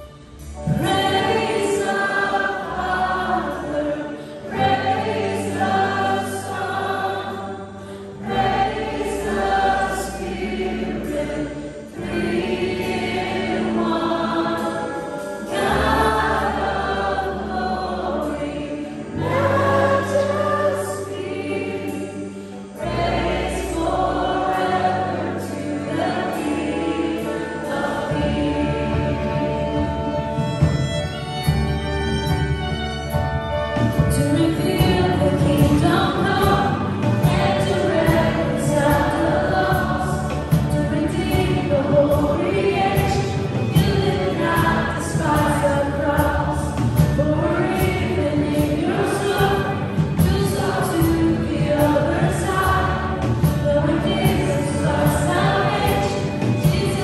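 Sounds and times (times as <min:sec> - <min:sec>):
worship band playing: 0:00.0 - 0:57.0
voices singing: 0:00.6 - 0:30.9, 0:34.2 - 0:57.0.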